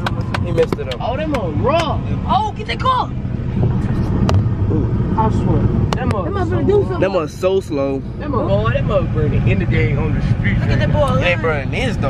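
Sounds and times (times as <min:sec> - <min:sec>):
car rumble inside cabin: 0:00.0 - 0:12.0.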